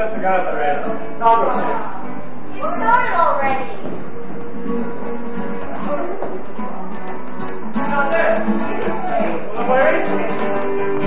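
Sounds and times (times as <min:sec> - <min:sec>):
flamenco acoustic guitar: 0:00.0 - 0:11.0.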